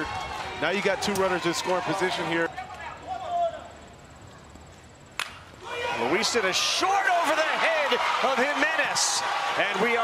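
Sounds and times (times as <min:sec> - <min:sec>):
crowd noise: 0:00.0 - 0:10.0
bat hitting baseball: 0:05.2 - 0:05.4.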